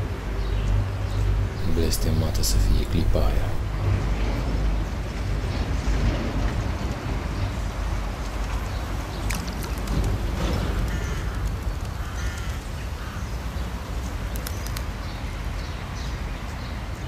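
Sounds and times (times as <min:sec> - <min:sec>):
low outdoor rumble: 0:01.5 - 0:06.1
bird calls: 0:10.4 - 0:13.6.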